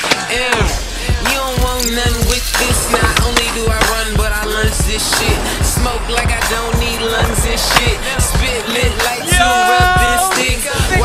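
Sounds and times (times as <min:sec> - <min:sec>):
hip-hop music with drum beat: 0:00.3 - 0:11.0
skateboard rolling and grinding: 0:00.8 - 0:11.0.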